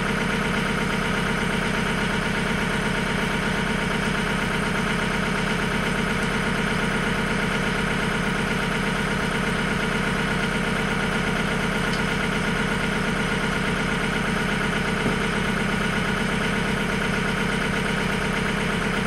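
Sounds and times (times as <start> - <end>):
tractor diesel engine idling: 0.0 - 19.0.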